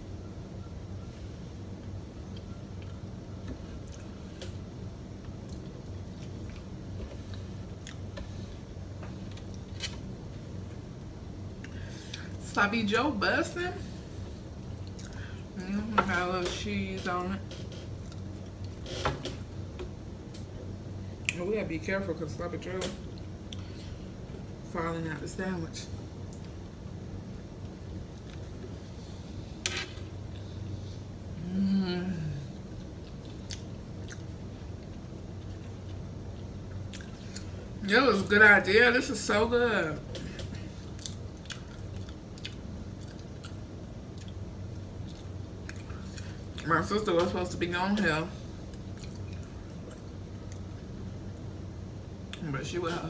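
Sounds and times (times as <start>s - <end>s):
steady low hum: 0.0s - 53.0s
person chewing food: 5.2s - 8.3s, 14.7s - 15.3s, 32.7s - 37.6s, 40.8s - 46.6s, 48.6s - 51.5s.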